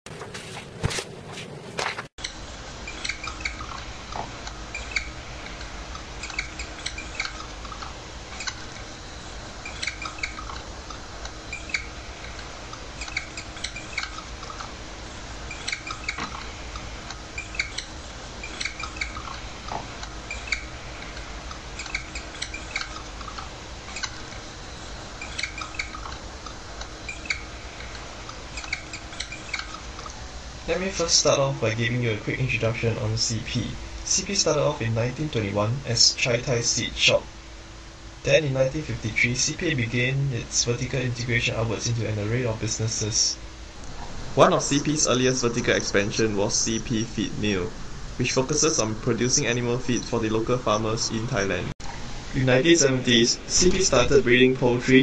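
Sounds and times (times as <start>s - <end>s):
steady low hum: 0.1s - 55.0s
marker squeaking on a whiteboard: 2.8s - 8.9s, 9.6s - 14.8s, 15.5s - 24.5s, 25.2s - 26.2s, 27.0s - 30.2s.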